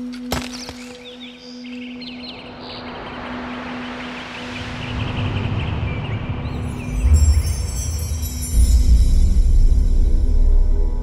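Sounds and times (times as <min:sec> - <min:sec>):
film music: 0:00.0 - 0:11.0
low drone: 0:02.4 - 0:11.0.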